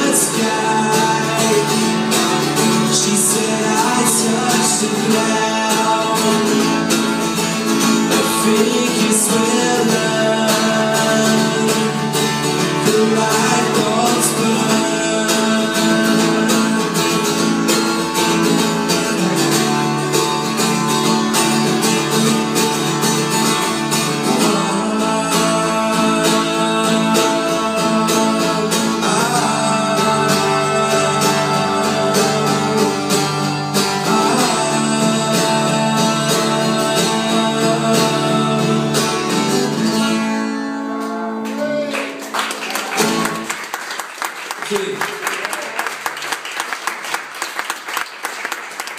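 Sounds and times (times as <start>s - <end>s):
person singing: 0.0s - 19.9s, 23.5s - 43.3s
acoustic guitar through pa: 0.0s - 43.8s.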